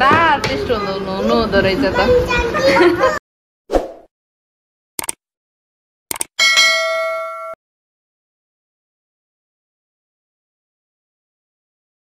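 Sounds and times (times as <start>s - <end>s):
short clicks: 5.0s - 5.2s, 6.1s - 6.3s
notification bell ding: 6.4s - 7.6s.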